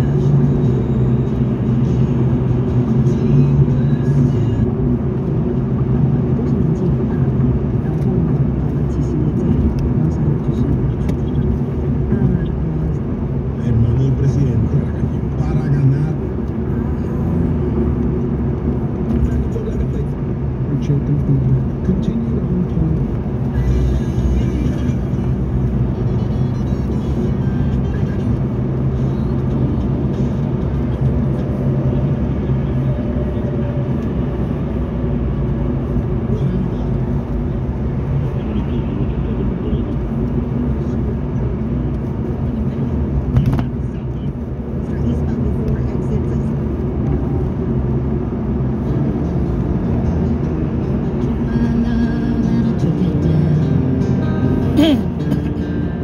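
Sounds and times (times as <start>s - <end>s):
car road and engine noise: 0.0s - 56.0s.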